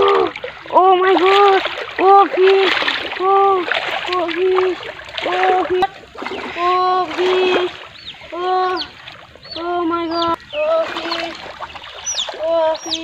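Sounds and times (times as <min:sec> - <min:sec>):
water splashing: 0:00.0 - 0:13.0.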